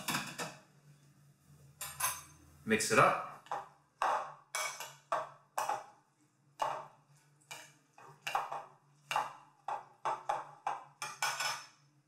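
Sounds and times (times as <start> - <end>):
metal utensils clinking on glass bowl: 1.8 - 2.4, 4.5 - 5.8, 11.0 - 11.8.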